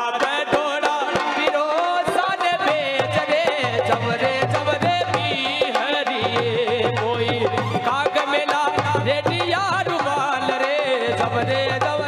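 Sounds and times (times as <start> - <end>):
harmonium accompanying: 0.0 - 12.0.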